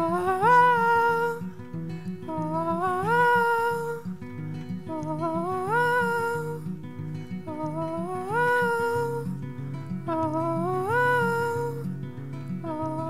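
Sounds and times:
plucked acoustic guitar: 0.0 - 13.0.

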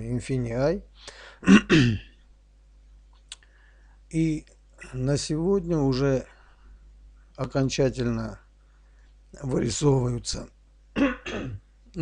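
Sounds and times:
man taking a breath: 1.0 - 1.4
man clearing his throat: 1.4 - 2.2, 11.0 - 11.6.

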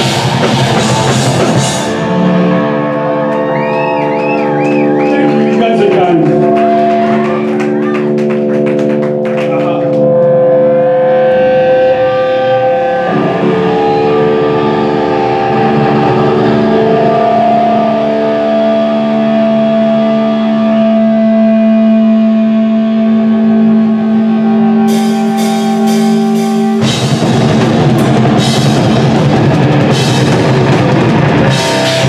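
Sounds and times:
drum or cymbal hits: 0.0 - 2.6, 24.9 - 32.0
distorted electric guitars: 0.0 - 32.0.

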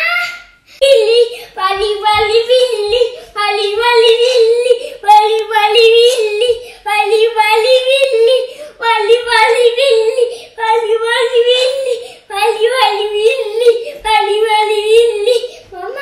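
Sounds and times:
child singing: 0.0 - 16.0.

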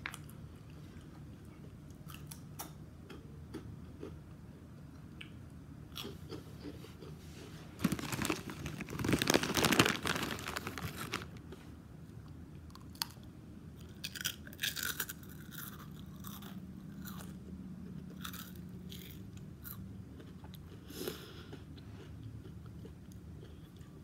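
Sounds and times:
person chewing: 5.9 - 7.2, 13.8 - 24.0
loud crunching food: 7.8 - 11.5, 12.7 - 24.0.

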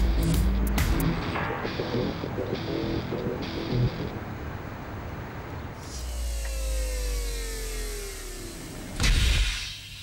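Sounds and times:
loud hit: 1.2 - 2.5.

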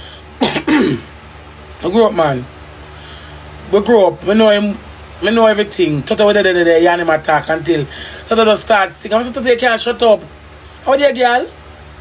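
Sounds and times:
person clearing throat: 0.4 - 1.1.

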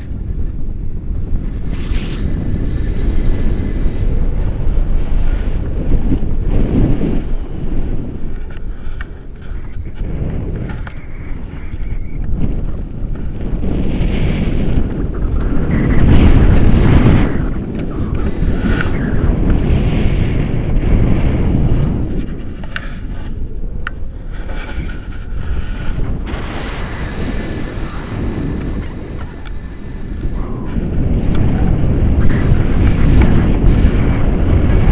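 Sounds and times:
wind buffeting microphone: 0.0 - 34.9.

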